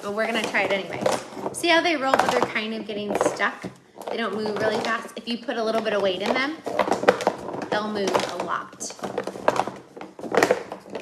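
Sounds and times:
plastic eggs knocking in cardboard box: 0.1 - 11.0.

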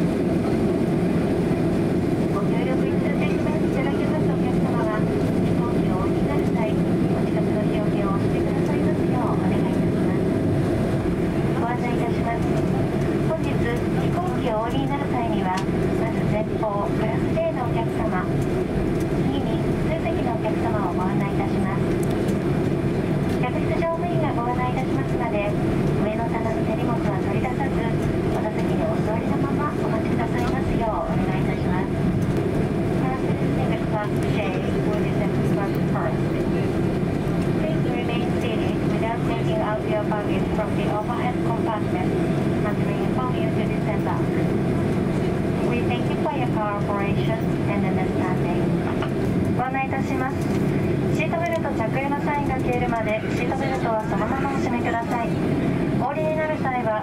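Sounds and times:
steady aircraft cabin hum: 0.0 - 57.0
cabin announcement over speaker: 0.1 - 57.0.

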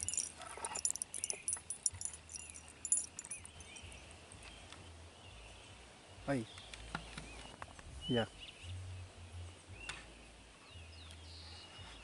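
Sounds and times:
ticks and rustles close by: 0.0 - 3.9.

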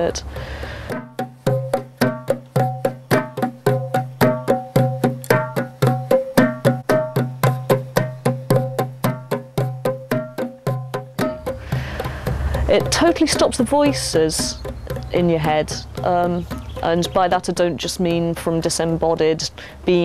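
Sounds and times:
hand drum rhythm: 0.0 - 20.0.

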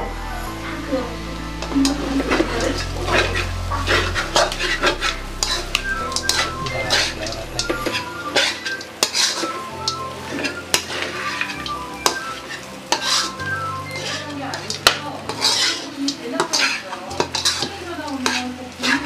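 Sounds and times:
meat sizzling: 0.4 - 19.0
metal spatula scraping a wok: 2.2 - 6.5, 8.0 - 19.0.

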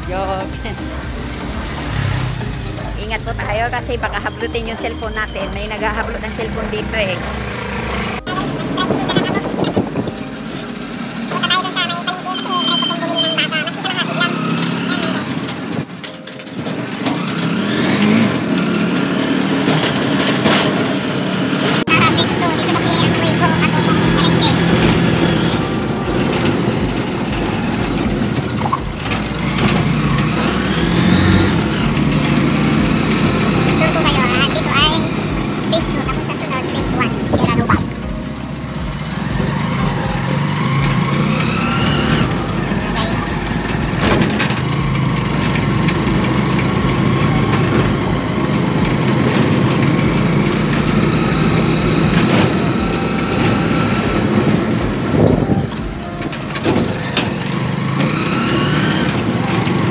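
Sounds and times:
small motorcycle engine revving: 0.0 - 59.9.

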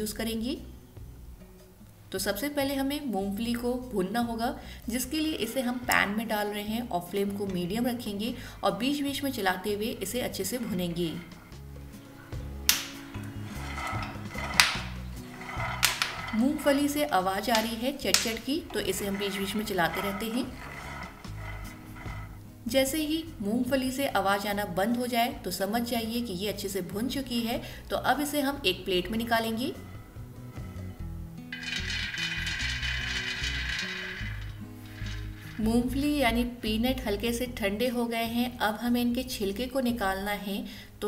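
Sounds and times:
background music: 0.0 - 40.2
peanuts popping in a pan: 12.6 - 13.4
peanuts rattling onto metal plate: 12.7 - 22.4, 31.5 - 36.1.

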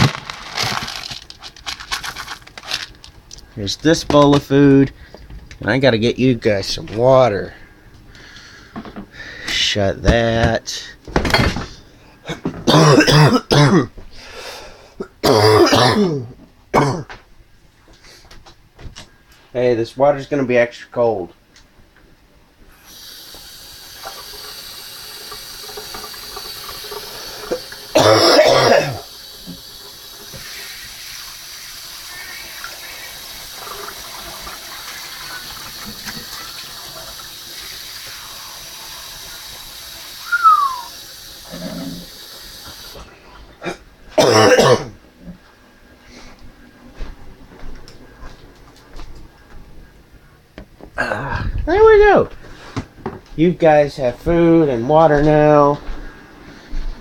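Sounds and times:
loud coughs: 12.3 - 14.0, 15.1 - 17.2, 27.9 - 29.1, 43.6 - 45.0
tap water running into bowl: 22.9 - 28.1, 29.0 - 43.0.

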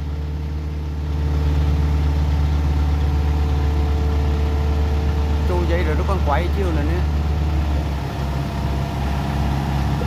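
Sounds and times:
excavator diesel engine running: 0.0 - 10.0.

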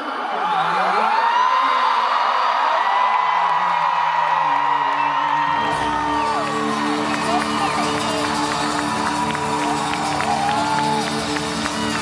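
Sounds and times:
crowd whooping and screaming: 0.0 - 12.0.

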